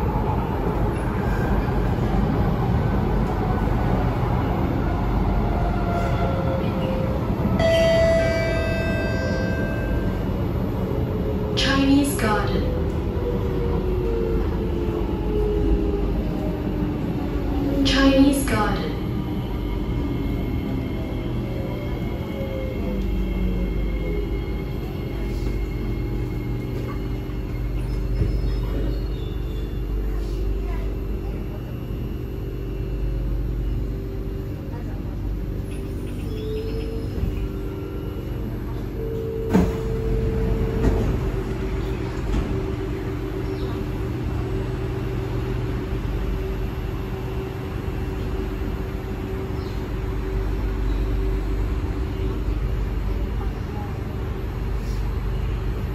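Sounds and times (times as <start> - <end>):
train cabin rumble: 0.0 - 55.9.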